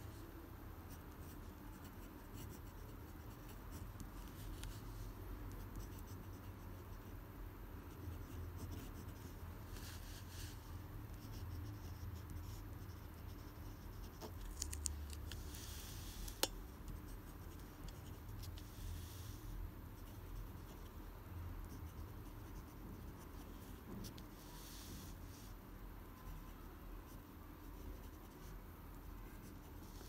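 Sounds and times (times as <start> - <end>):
low steady hum: 0.0 - 30.0
pen scratching on paper: 0.9 - 21.0, 21.6 - 25.5, 26.2 - 28.6.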